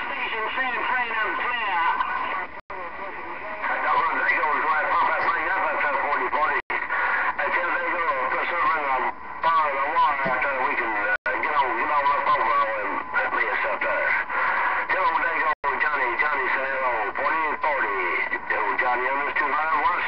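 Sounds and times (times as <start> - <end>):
voices over radio speaker: 0.0 - 20.0.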